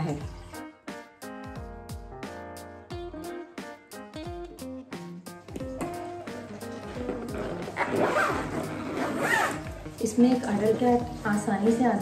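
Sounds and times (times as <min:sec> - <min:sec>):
background music: 0:00.0 - 0:12.0
zipper being pulled: 0:06.7 - 0:11.2.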